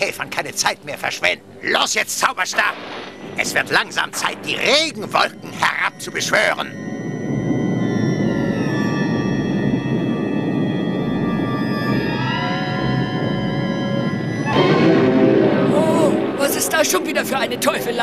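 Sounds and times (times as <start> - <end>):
ominous cartoon score: 0.0 - 18.0
rain rushing: 2.5 - 18.0
low rumbling: 2.7 - 18.0.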